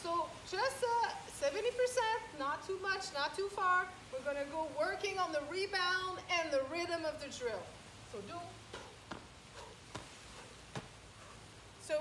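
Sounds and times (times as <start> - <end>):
sneakers landing on asphalt: 9.0 - 11.0.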